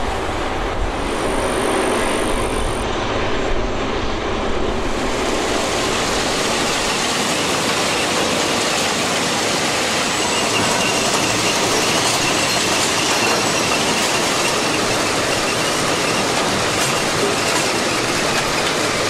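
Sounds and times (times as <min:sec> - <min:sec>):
faint high squeal: 0:09.8 - 0:16.3.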